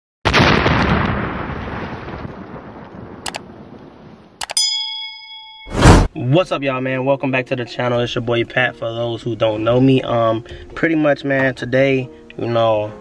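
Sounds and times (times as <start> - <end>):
loud boom: 0.3 - 3.2, 5.7 - 6.1
clicks: 4.4 - 4.6
bell-like ding: 4.5 - 6.1
whoosh: 5.7 - 6.1.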